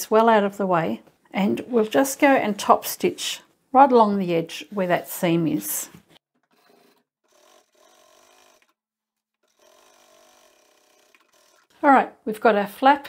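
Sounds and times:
sewing machine running: 6.4s - 11.8s.

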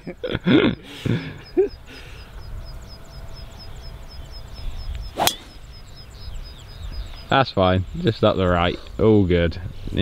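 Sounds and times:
men laughing: 0.0s - 2.2s.

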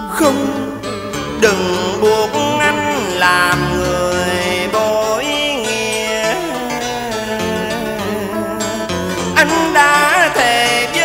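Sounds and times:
man singing sliding notes: 0.0s - 11.0s
traditional instrumental accompaniment: 0.0s - 11.0s.

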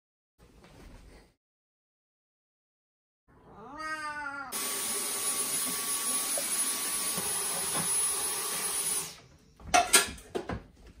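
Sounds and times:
cat meowing: 3.3s - 4.6s
cordless vacuum cleaner whining: 4.6s - 9.2s.

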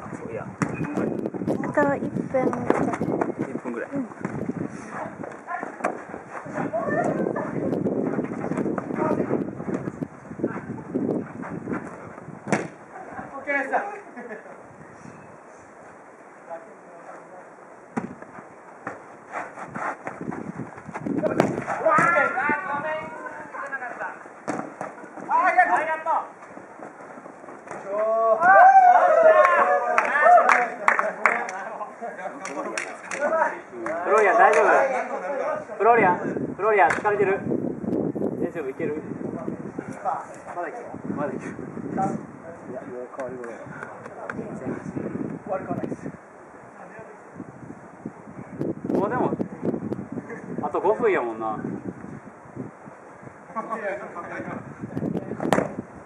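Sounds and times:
ball kicks: 0.6s - 1.0s, 12.4s - 12.8s, 20.9s - 22.2s, 55.4s - 55.8s
players shouting: 21.6s - 23.5s, 27.8s - 30.8s.

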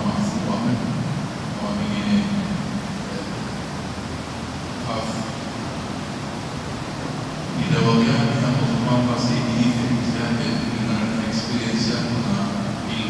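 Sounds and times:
man speaking into a microphone: 0.0s - 3.6s, 4.8s - 5.4s, 7.5s - 13.0s
steady background hiss: 0.0s - 13.0s.

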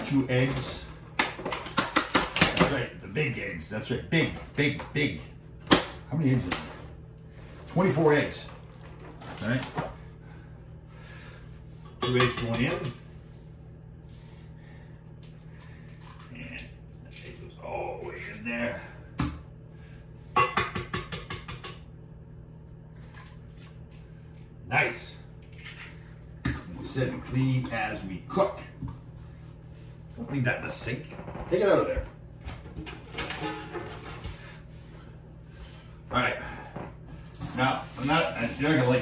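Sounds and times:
man talking: 0.0s - 0.9s, 2.5s - 5.3s, 7.7s - 8.6s, 12.0s - 12.9s, 37.5s - 39.0s
utensil clinking on metal bowl: 12.0s - 13.0s
water running into sink: 37.4s - 39.0s.

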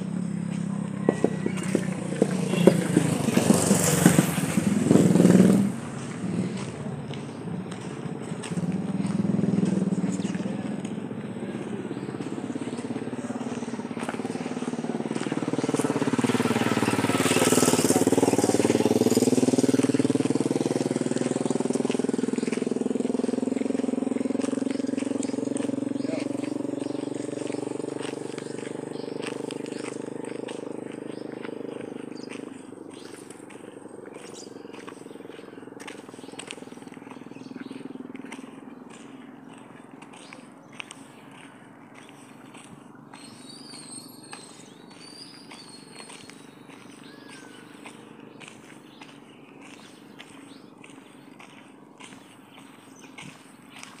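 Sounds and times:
vehicle engine passing: 0.0s - 54.0s.

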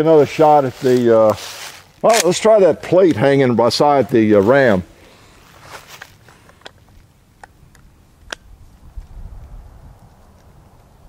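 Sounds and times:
faint clicks and rustles: 5.0s - 11.0s.

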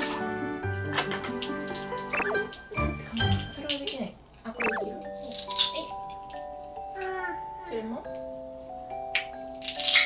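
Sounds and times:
background music with held notes: 0.0s - 4.0s, 4.6s - 10.0s
plastic toys rattling: 9.6s - 10.0s.

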